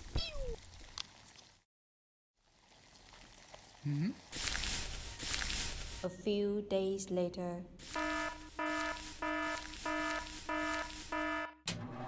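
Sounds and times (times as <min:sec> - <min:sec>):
electronic alarm beeping: 0:07.9 - 0:11.6.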